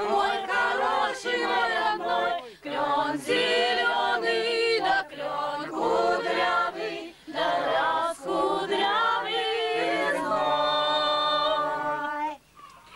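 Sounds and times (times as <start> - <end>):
group singing in harmony: 0.0 - 12.4
singers breathing: 2.4 - 2.7, 7.0 - 7.4.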